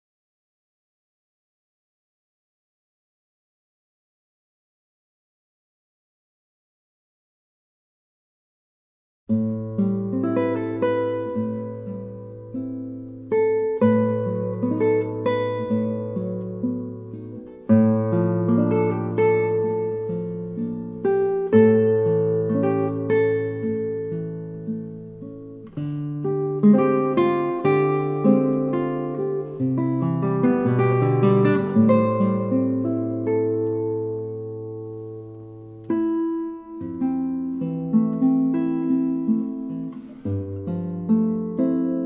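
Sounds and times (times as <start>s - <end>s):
fingerpicked classical guitar: 9.3s - 42.0s.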